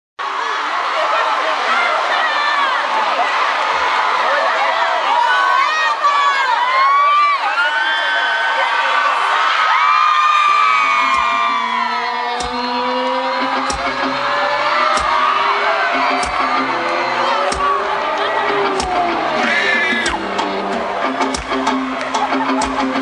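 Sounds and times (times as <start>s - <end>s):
crowd screaming and cheering: 0.2s - 23.0s
heavy drum beat: 10.8s - 11.7s, 12.4s - 12.8s, 13.4s - 23.0s
rising low tones: 10.8s - 23.0s.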